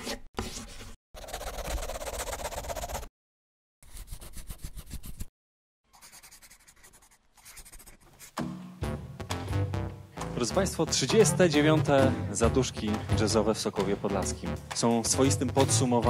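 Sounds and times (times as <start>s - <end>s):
pen scribbling on paper: 1.2s - 3.1s, 3.8s - 5.3s, 5.9s - 8.4s
music: 8.4s - 16.0s.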